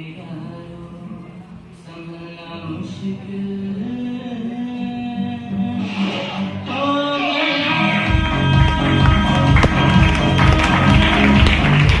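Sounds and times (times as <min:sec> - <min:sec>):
acoustic guitar strummed: 0:00.0 - 0:12.0
repeating low beat: 0:09.0 - 0:12.0.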